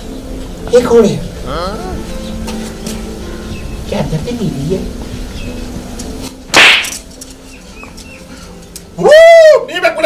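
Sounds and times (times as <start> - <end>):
whip-crack: 6.5 - 7.1.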